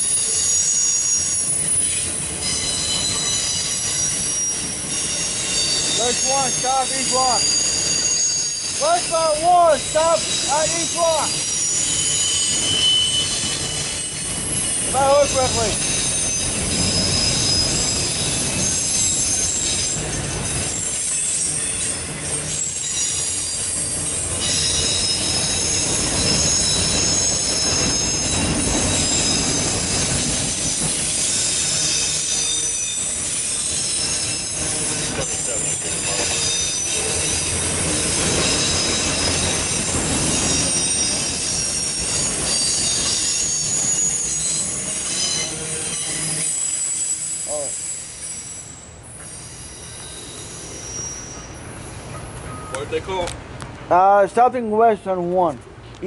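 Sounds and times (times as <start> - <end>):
wheels squealing: 0.0 - 53.2
train wheels rumbling on rail: 0.0 - 56.0.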